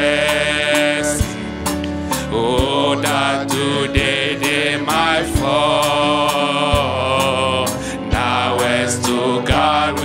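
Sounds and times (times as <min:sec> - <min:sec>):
man singing worship song: 0:00.0 - 0:10.0
sustained instrumental chords: 0:00.0 - 0:10.0
steady beat: 0:02.5 - 0:10.0.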